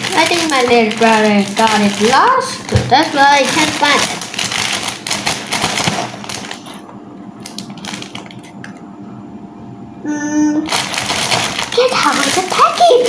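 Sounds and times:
plastic bag crinkling: 0.0s - 6.8s, 7.4s - 8.5s, 10.7s - 13.0s.

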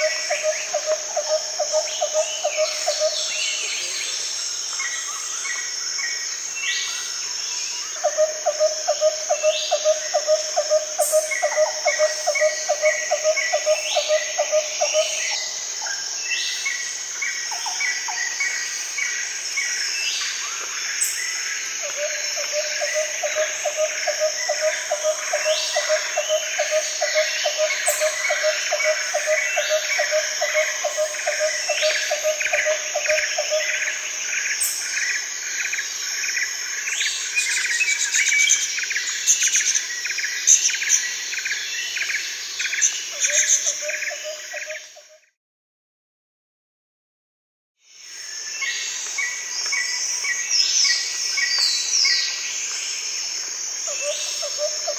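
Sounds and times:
high insect drone: 0.0s - 45.2s, 47.8s - 54.9s.

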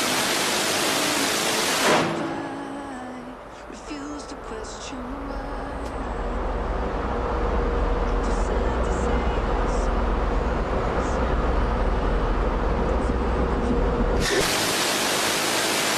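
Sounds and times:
faint steady hum: 2.1s - 14.2s.

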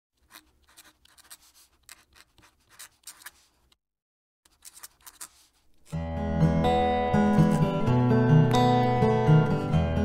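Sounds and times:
pen nib scratching paper: 0.2s - 3.8s, 4.5s - 6.0s, 7.4s - 7.8s.

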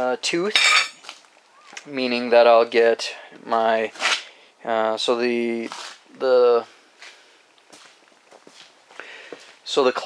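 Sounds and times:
faint footsteps on garage floor: 7.0s - 9.6s.

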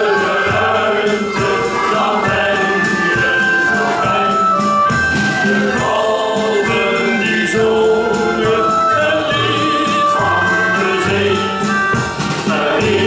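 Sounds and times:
male choir singing a sea shanty: 0.0s - 13.0s.

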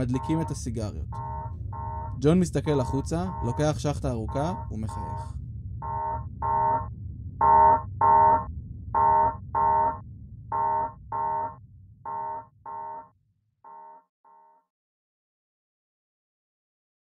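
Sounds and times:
alarm short beeps: 0.0s - 5.2s, 5.8s - 13.1s, 13.7s - 14.6s
low rumble: 0.0s - 13.0s.

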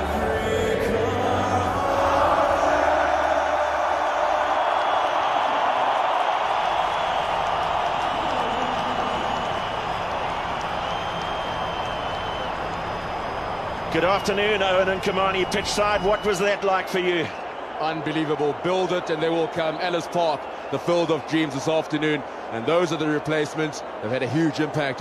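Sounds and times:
music: 0.0s - 5.4s
stadium crowd cheering: 0.0s - 25.0s.

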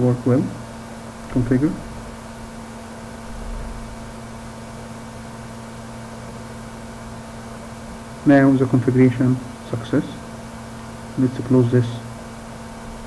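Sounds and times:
low electrical hum: 0.0s - 13.0s
low bump: 3.2s - 4.6s.

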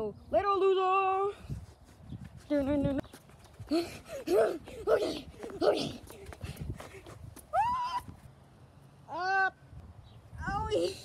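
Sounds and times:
child squealing: 7.5s - 8.1s.

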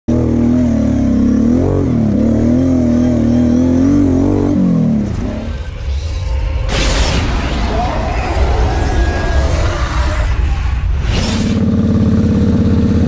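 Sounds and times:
quad bike engine revving: 0.1s - 5.5s, 11.4s - 13.0s.

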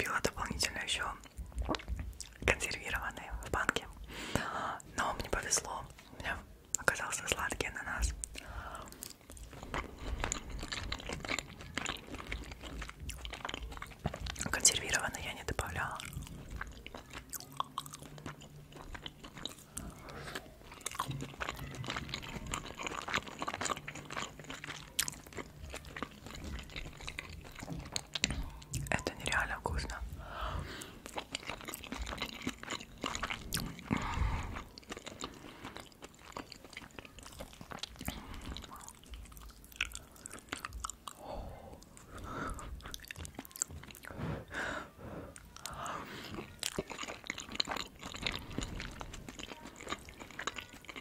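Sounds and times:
chewing with wet mouth sounds: 0.0s - 51.0s.

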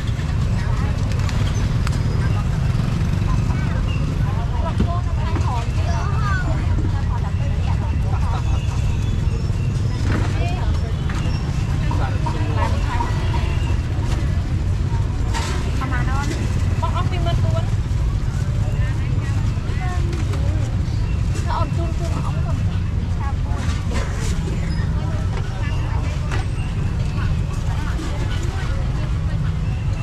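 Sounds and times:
voices of vendors and shoppers: 0.0s - 30.0s.

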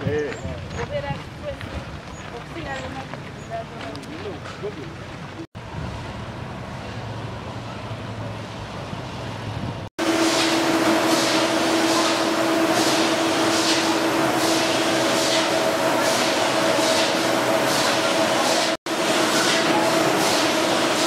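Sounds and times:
factory machinery humming: 5.6s - 21.0s
machine hiss: 10.0s - 21.0s.

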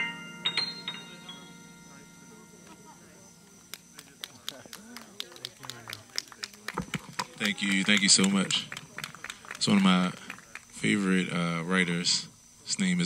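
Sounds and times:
digital piano high notes: 0.0s - 4.3s
small group clapping: 3.6s - 11.0s.

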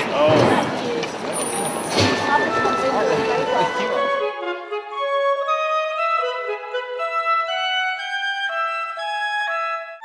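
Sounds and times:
pedestrian street crowd voices: 0.0s - 5.0s.

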